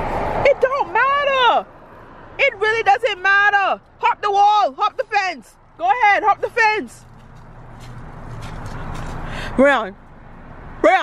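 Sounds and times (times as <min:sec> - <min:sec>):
highway vehicle passing: 0:00.0 - 0:11.0.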